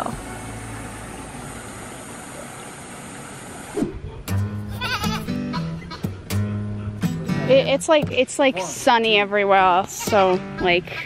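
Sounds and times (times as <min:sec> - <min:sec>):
background music with bass line: 0:03.9 - 0:08.8.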